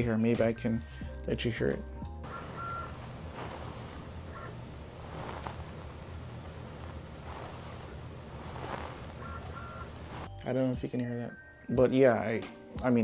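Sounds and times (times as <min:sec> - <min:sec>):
room noise hiss: 0:02.3 - 0:10.3.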